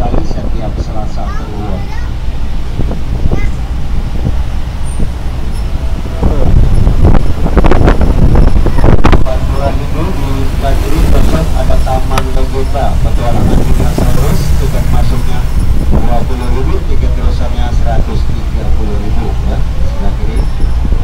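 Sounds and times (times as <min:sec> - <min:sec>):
bus engine and road rumble: 0:00.0 - 0:21.0
indistinct voices: 0:05.3 - 0:07.7, 0:08.5 - 0:20.8.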